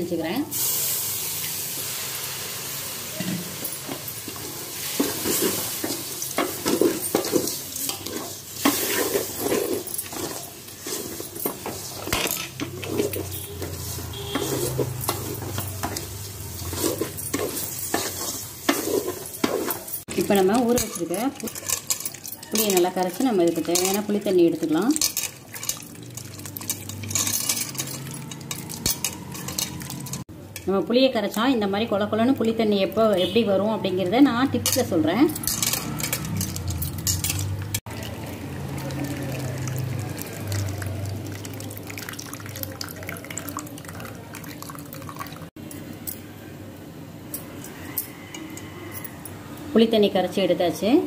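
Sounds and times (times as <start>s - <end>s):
water sizzling in hot pot: 0.3s - 30.3s, 37.8s - 45.6s
wooden spatula scraping pot: 4.3s - 30.2s.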